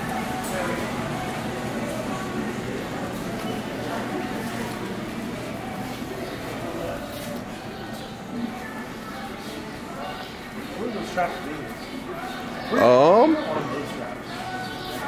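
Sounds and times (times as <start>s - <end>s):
indoor hall hum: 0.0s - 15.0s
murmur of shoppers' voices: 0.0s - 15.0s.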